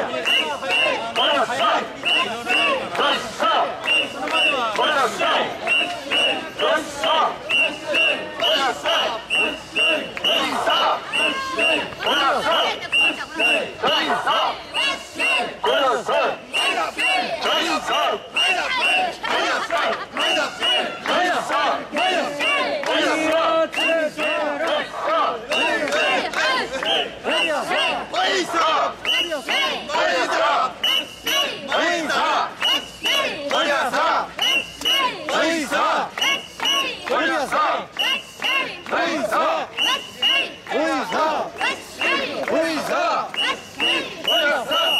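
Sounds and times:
crowd chanting in unison: 0.0s - 44.9s.

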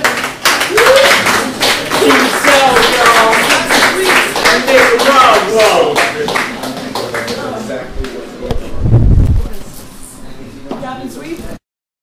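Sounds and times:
audience clapping: 0.0s - 7.6s.

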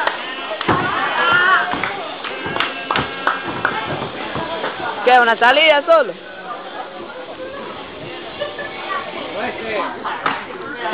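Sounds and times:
onlookers chattering: 0.0s - 10.9s.

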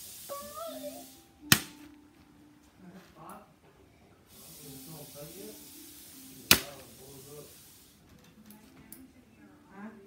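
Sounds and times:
scissors snip: 6.5s - 6.8s.

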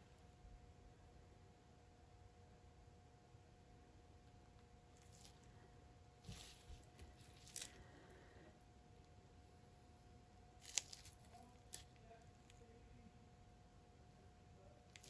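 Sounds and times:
faint steady hum: 0.0s - 15.0s
gloved hands handling a tile: 6.2s - 8.0s.

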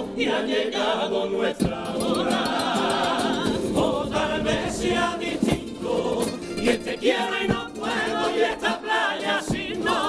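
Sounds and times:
male choir singing: 0.0s - 10.0s.

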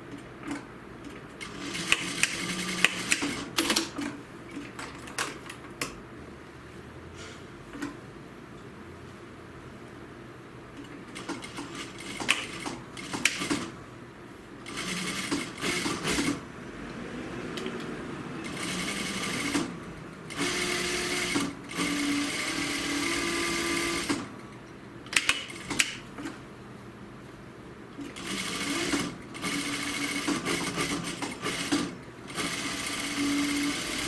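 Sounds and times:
sewing machine stitching: 1.4s - 4.2s, 11.1s - 13.8s, 14.6s - 16.4s, 18.4s - 24.3s, 28.0s - 34.0s.

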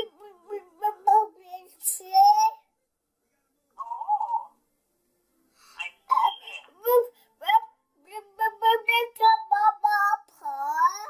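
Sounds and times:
toddler babbling: 9.9s - 11.0s.

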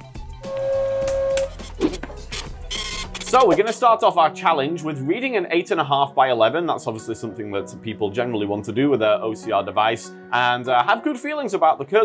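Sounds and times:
buzzy electronic tone: 0.4s - 1.9s.

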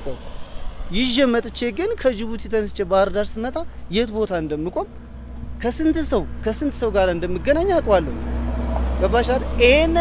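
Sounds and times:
man speaking: 0.9s - 5.0s, 5.6s - 8.2s, 9.0s - 10.0s.

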